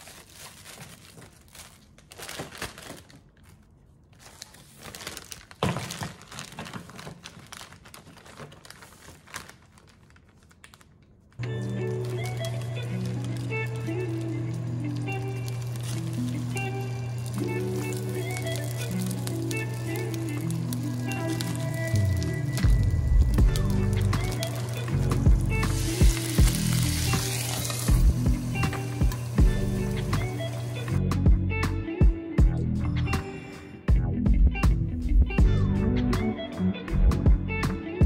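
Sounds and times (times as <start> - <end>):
background music with held notes: 11.4 - 38.0
plastic bag seal clicks: 15.0 - 28.0
water sizzling in hot oil: 15.0 - 30.9.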